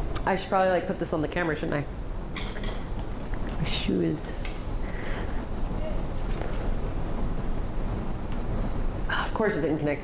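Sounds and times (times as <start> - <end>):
low rumbling microphone noise: 0.0 - 10.0.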